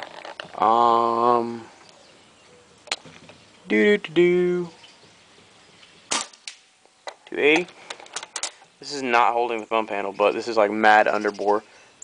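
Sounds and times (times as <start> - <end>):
paintball marker shot: 6.1 - 6.6.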